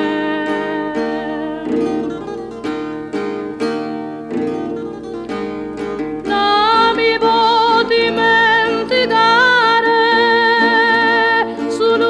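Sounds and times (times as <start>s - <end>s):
woman singing with vibrato: 0.0s - 2.3s, 6.2s - 12.0s
strummed acoustic guitar: 0.0s - 12.0s.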